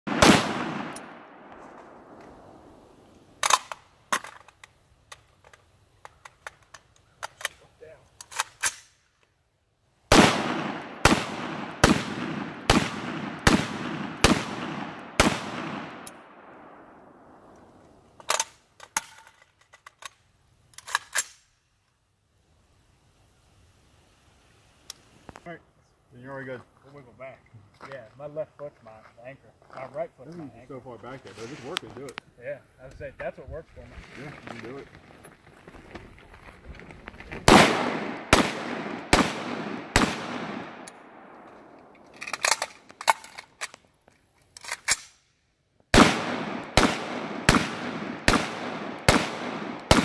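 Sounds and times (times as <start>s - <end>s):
rifle shots with echo: 0.1s - 3.6s, 10.1s - 17.5s, 37.5s - 42.0s, 45.9s - 50.0s.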